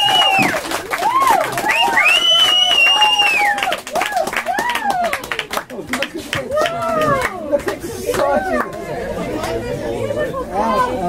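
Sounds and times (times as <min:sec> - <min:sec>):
background chatter: 0:03.9 - 0:11.0.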